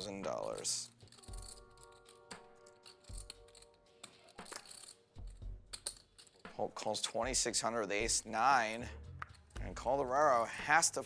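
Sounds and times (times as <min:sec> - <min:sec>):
poker chips clicking: 0:00.0 - 0:06.5
soft background music chord: 0:00.0 - 0:11.0.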